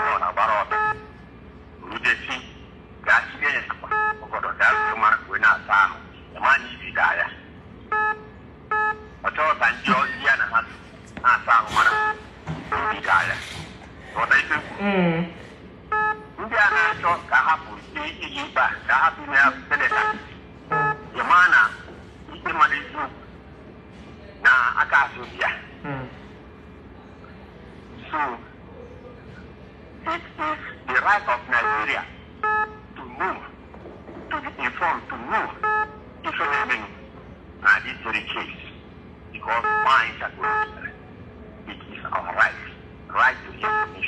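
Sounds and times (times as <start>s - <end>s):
short electronic beeps: 3.9s - 4.2s, 7.9s - 9.1s, 11.8s - 13.0s, 15.9s - 16.3s, 19.9s - 21.2s, 31.6s - 32.9s, 35.6s - 36.0s
person making vocal sounds: 14.6s - 15.4s, 25.8s - 26.1s.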